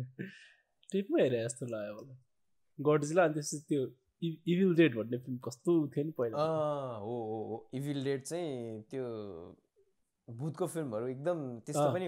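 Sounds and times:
man talking: 0:01.0 - 0:02.2, 0:02.8 - 0:09.6, 0:10.3 - 0:12.0.

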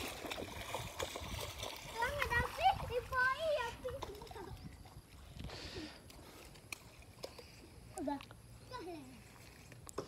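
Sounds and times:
child's voice: 0:01.9 - 0:04.6, 0:08.0 - 0:09.4.

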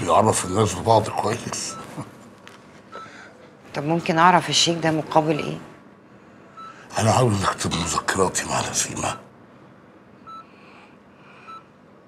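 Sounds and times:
patient monitor beeping: 0:00.0 - 0:09.4, 0:10.2 - 0:10.6, 0:11.4 - 0:11.8.

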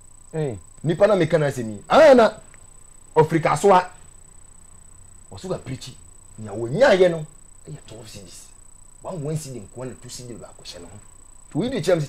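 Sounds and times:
faint high-pitched whine: 0:00.0 - 0:12.0
person speaking: 0:05.3 - 0:12.0.

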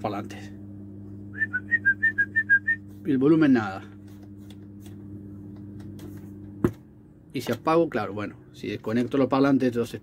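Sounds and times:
amplifier mains hum: 0:00.0 - 0:10.0.

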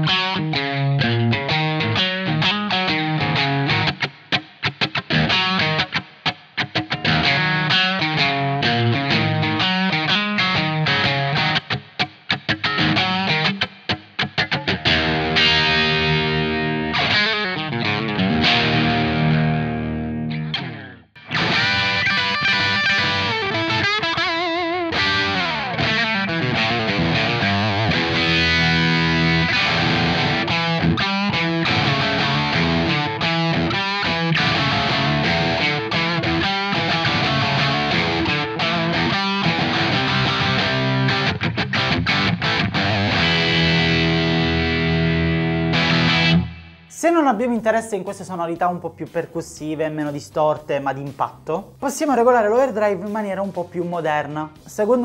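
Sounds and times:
overdriven electric guitar riffs: 0:00.0 - 0:47.0.

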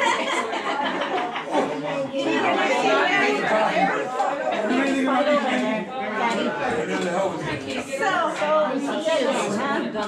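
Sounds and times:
overlapping conversation: 0:00.0 - 0:10.0.

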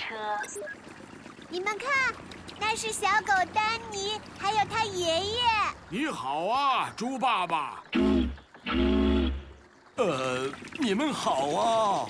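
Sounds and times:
cartoon boat horn hooting: 0:07.9 - 0:09.7.

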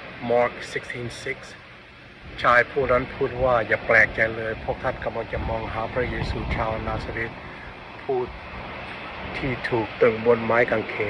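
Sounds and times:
steady low rumble: 0:00.0 - 0:11.0
man reading aloud: 0:00.2 - 0:01.6, 0:02.4 - 0:07.4, 0:08.0 - 0:08.3, 0:09.3 - 0:11.0.

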